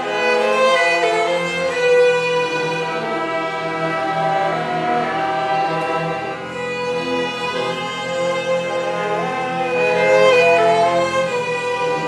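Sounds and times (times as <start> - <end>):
string orchestra playing: 0.0 - 12.0
violin leading: 0.0 - 12.0.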